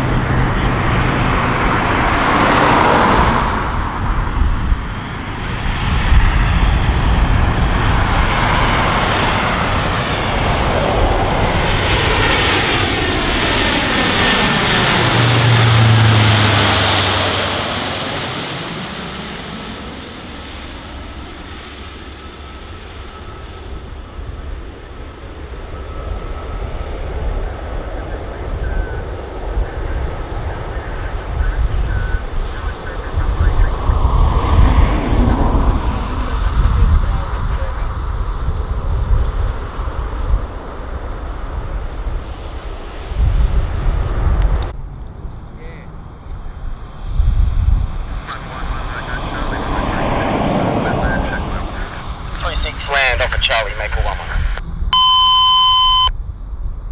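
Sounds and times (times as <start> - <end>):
propeller aircraft droning overhead: 0.0 - 56.9.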